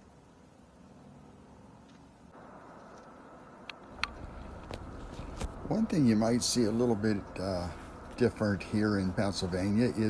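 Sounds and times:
road and engine noise in cab: 0:02.3 - 0:10.0
sharp clicks: 0:02.8 - 0:05.6.

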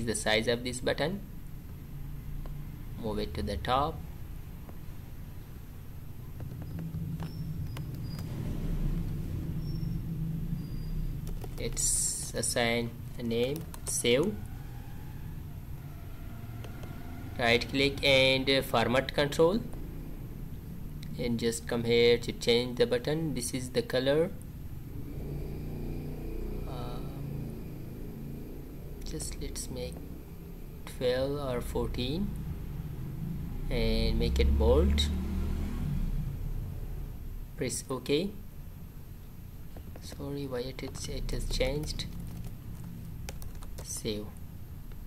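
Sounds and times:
low background rumble: 0:00.0 - 0:45.0
computer mouse clicks: 0:06.4 - 0:08.3, 0:11.2 - 0:11.8, 0:40.9 - 0:44.1.

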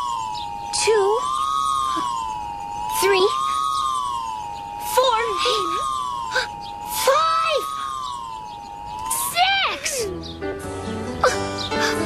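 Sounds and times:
wavering electronic siren tone: 0:00.0 - 0:10.3.

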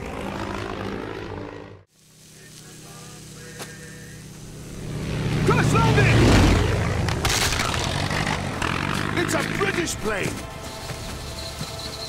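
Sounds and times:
propeller plane engine drone: 0:00.0 - 0:12.0
dramatic film score: 0:04.3 - 0:12.0.

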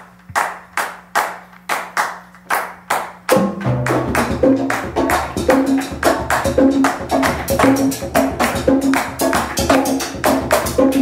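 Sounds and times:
hand claps: 0:00.2 - 0:10.7
latin jazz band playing: 0:03.3 - 0:11.0.

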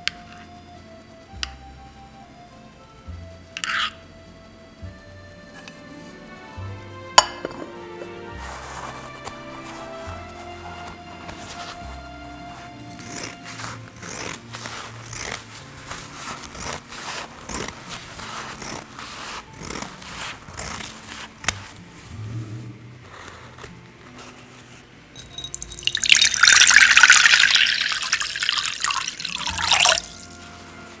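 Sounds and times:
background music with held notes: 0:00.0 - 0:31.0
scissors cutting paper towel: 0:12.6 - 0:21.9.

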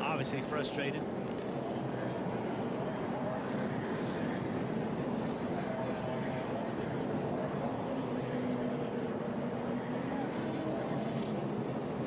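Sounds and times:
race car engines running: 0:00.0 - 0:12.0.

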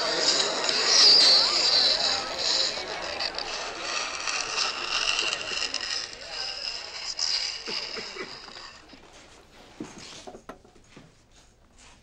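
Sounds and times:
fingernails scraping chalkboard: 0:00.0 - 0:11.0.

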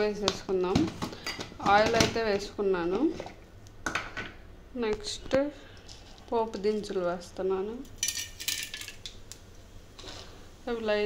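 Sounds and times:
seeds pattering into hot oil: 0:07.8 - 0:10.5.

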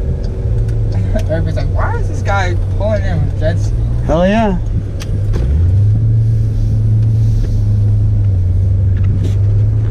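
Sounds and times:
car engine droning: 0:00.0 - 0:09.9.

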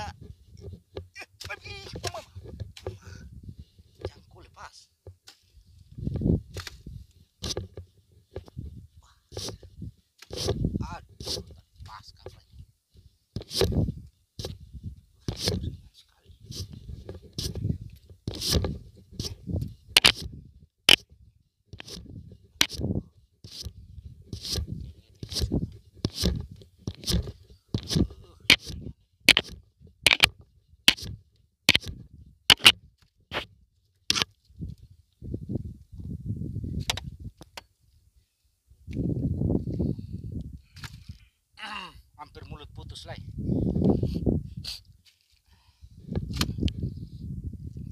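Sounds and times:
wind on microphone: 0:01.6 - 0:04.4, 0:05.6 - 0:38.0, 0:38.7 - 0:41.3, 0:42.6 - 0:45.0, 0:45.8 - 0:47.9
sharp clicks and scrapes: 0:05.2 - 0:08.7, 0:09.3 - 0:11.6, 0:13.4 - 0:14.6, 0:15.3 - 0:15.8, 0:16.4 - 0:21.1, 0:21.7 - 0:34.8, 0:46.1 - 0:46.8.

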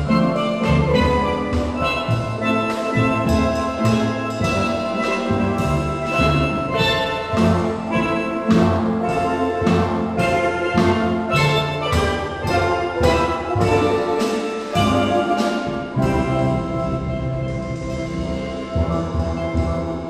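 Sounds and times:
steel drum band playing: 0:00.0 - 0:20.0.

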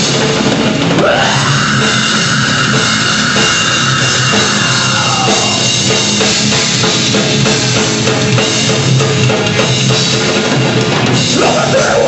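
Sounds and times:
drum kit: 0:00.0 - 0:12.0
electric guitars: 0:00.0 - 0:12.0.

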